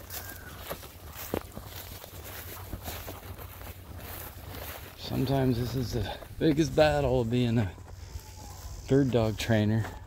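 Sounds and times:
soft footsteps in field: 0.0s - 10.0s.

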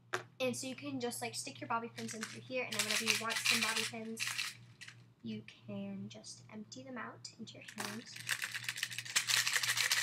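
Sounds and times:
bobby pins rattling in plastic bottle: 2.0s - 4.6s, 7.7s - 10.0s.

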